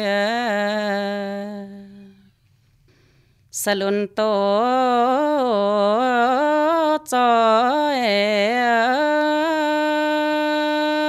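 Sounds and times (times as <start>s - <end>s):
faint breath: 2.0s - 3.5s.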